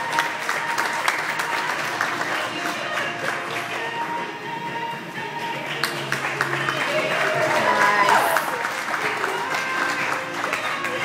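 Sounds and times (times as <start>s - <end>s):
audience clapping: 0.0s - 4.0s, 5.6s - 11.0s
performance music: 0.0s - 11.0s.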